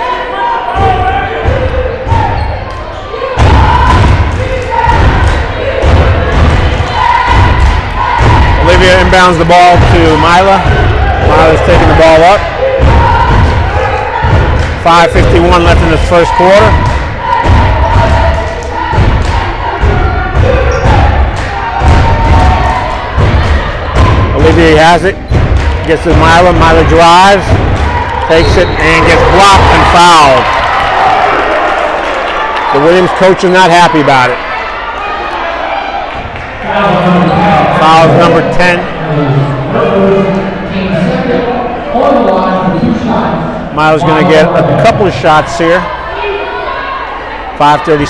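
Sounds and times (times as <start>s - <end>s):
crowd voices and shouts: 0.0s - 48.0s
sneakers squeaking: 0.8s - 3.9s, 19.8s - 21.2s.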